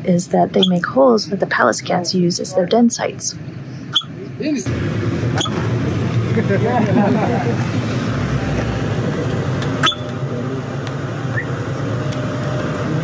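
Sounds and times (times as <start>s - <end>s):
low rumble: 4.6s - 13.0s
person laughing: 6.3s - 7.7s.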